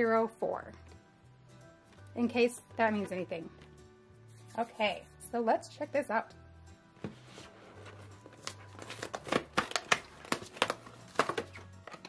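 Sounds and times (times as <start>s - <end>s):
plastic packaging crinkling: 8.3s - 12.0s.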